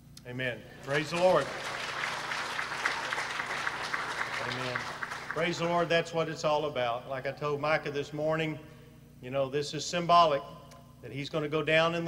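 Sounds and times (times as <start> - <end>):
crowd clapping: 0.7 - 6.0.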